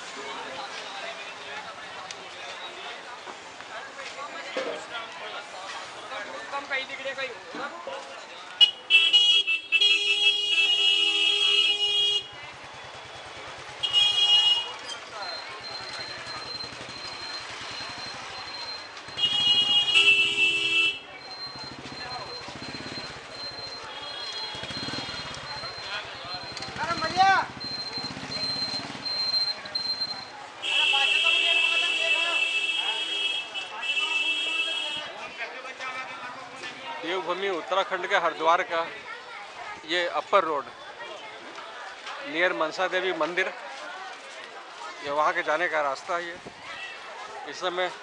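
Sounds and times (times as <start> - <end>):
crowd chatter: 0.0 - 48.0
vehicle horn honking: 8.6 - 12.4, 13.8 - 14.8, 19.1 - 21.1, 30.6 - 35.1.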